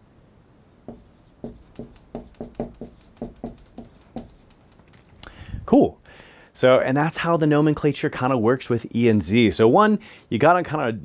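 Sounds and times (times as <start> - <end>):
marker writing on whiteboard: 0.9 - 5.1.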